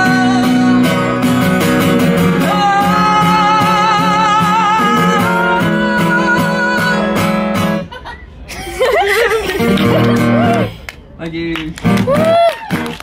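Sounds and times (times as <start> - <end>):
acoustic guitar strumming: 0.0 - 7.9, 9.6 - 10.7
audience shouting and cheering: 12.0 - 13.0.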